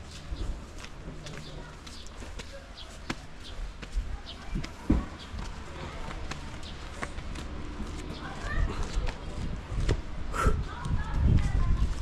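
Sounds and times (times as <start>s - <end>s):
footsteps on stone steps: 0.0s - 12.0s.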